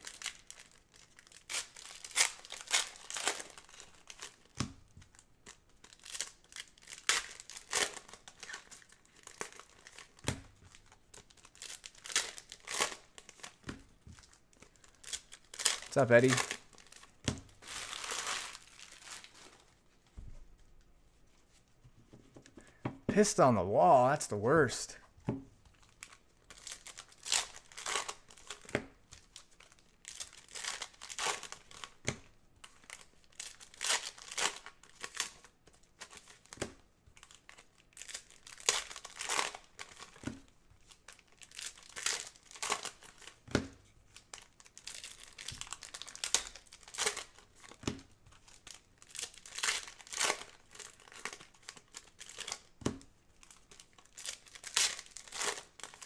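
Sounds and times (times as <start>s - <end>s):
foil wrappers crinkling and tearing: 0.0s - 13.6s, 14.2s - 19.7s, 25.8s - 32.0s, 32.6s - 36.6s, 37.2s - 43.4s, 44.1s - 56.0s.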